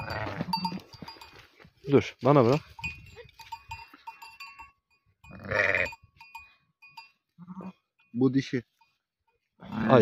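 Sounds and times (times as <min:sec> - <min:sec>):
sheep bleating: 0:00.0 - 0:01.0, 0:05.2 - 0:06.0, 0:07.4 - 0:07.9, 0:09.6 - 0:10.0.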